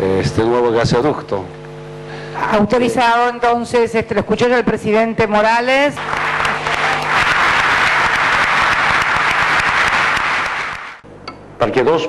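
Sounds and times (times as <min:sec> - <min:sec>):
audience applauding: 0:06.0 - 0:11.0.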